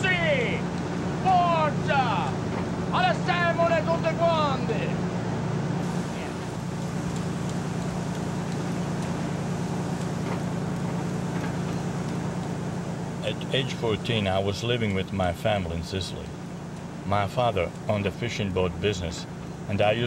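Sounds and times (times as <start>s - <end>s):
man shouting: 0.0s - 2.4s, 3.0s - 4.8s
boat engine droning: 0.0s - 20.0s.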